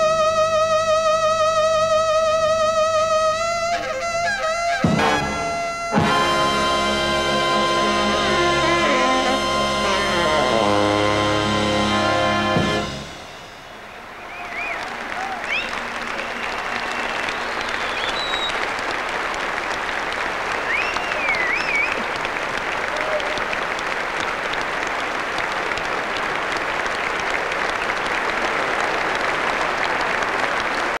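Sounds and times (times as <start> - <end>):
audience applauding: 4.8 - 31.0
rising and falling whistles: 14.0 - 18.7, 20.6 - 22.0.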